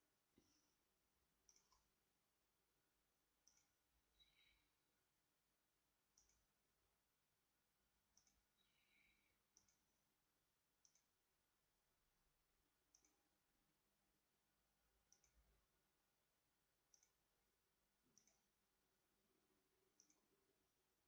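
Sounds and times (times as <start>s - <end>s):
computer mouse clicks: 1.4s - 1.9s, 3.4s - 4.6s, 6.1s - 6.5s, 8.1s - 10.0s, 10.8s - 11.1s, 12.9s - 13.3s, 15.1s - 15.4s, 16.9s - 17.2s, 18.1s - 18.5s, 19.9s - 20.3s.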